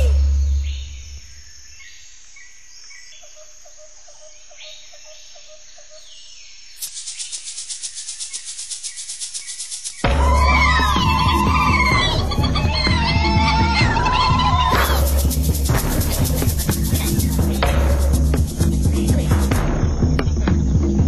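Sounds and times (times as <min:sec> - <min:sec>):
high-pitched insect chirring: 0:06.6 - 0:21.0
faint high hiss: 0:06.7 - 0:10.1.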